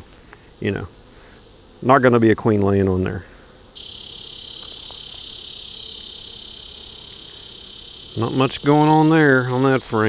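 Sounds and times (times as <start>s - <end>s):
cicada buzzing: 0.0s - 10.0s.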